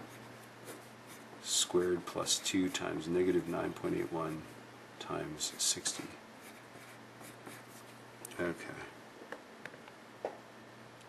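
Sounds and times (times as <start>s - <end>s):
pencil scratching on paper: 0.0s - 4.5s, 5.4s - 8.0s.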